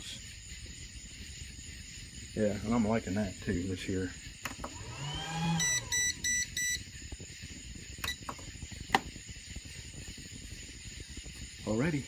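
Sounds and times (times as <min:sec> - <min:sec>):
appliance keypad beeps: 0:05.6 - 0:06.8, 0:08.0 - 0:08.3.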